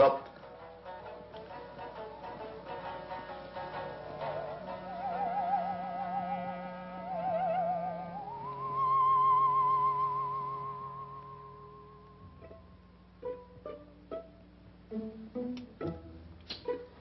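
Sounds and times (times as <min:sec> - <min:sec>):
plucked string notes: 0:00.0 - 0:17.0
high wavering tone with vibrato: 0:04.1 - 0:12.3.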